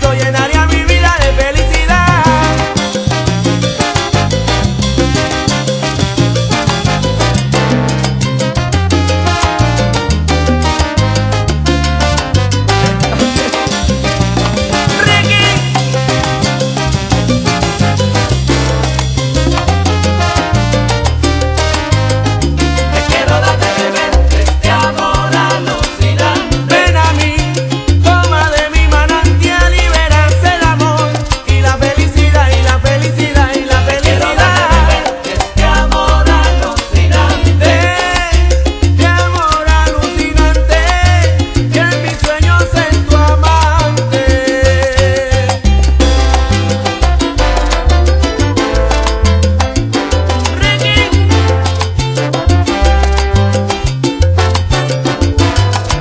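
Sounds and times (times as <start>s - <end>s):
dense percussion: 0.0s - 56.0s
pulsing bass line: 0.0s - 56.0s
salsa band music: 0.0s - 56.0s.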